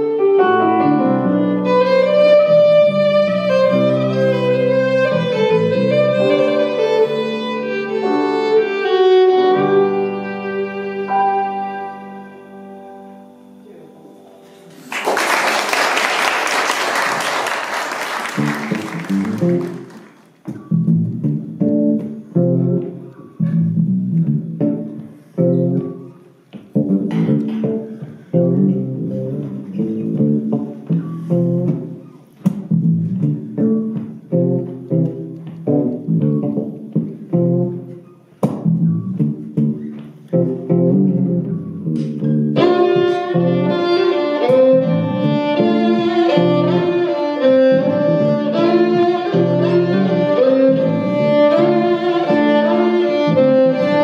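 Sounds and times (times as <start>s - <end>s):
electric bass guitar solo: 0.0s - 7.8s, 18.4s - 19.9s, 20.5s - 54.0s
violin: 0.0s - 12.7s, 40.3s - 54.0s
audience applause: 14.7s - 20.4s.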